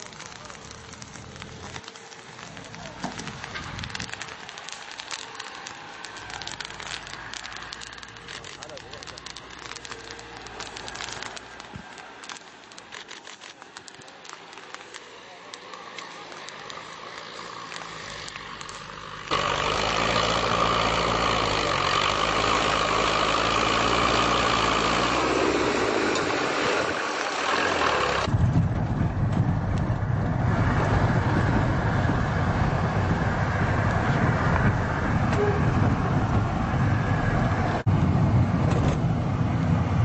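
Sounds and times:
vehicle engine running: 13.8s - 40.0s
car driving heard from cabin: 16.6s - 40.0s.

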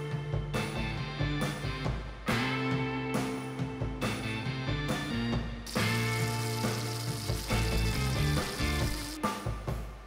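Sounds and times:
background music: 0.0s - 10.0s
steak sizzling in skillet: 5.7s - 9.2s.

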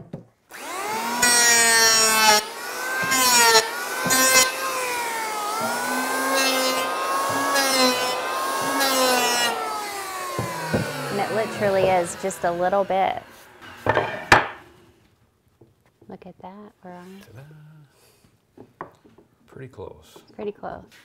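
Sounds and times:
planer blades shaving wood: 0.5s - 14.7s
electric planer whining: 0.5s - 14.9s.

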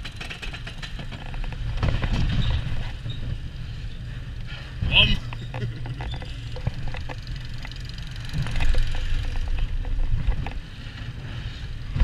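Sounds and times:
wheels clacking on track: 0.0s - 12.0s.

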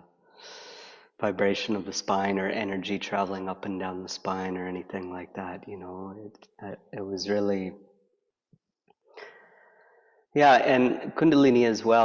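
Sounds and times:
man inhaling breath: 9.2s - 10.2s.

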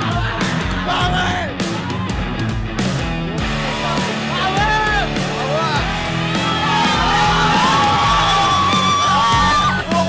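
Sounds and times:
rock music with held high note: 0.0s - 10.0s.

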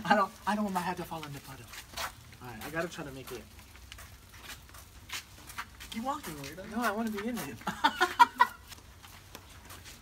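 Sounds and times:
man laughing: 7.6s - 8.7s.

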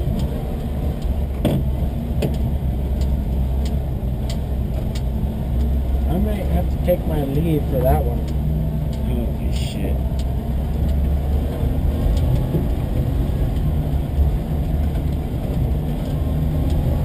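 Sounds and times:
engine low rumble: 0.0s - 17.0s.

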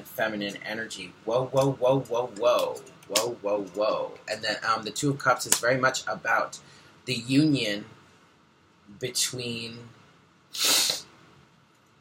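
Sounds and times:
man's breathy burst: 10.5s - 11.1s.

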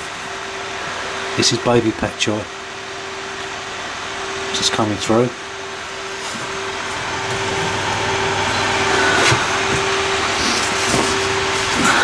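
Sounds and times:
steady machine hum: 0.0s - 12.0s.

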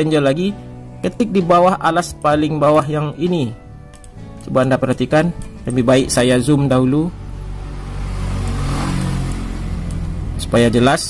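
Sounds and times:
vehicle engine humming: 6.4s - 10.9s.

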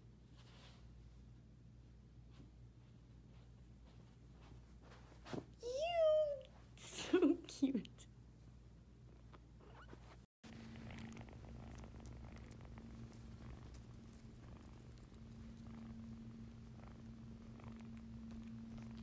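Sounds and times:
kitten purring: 9.6s - 19.0s.

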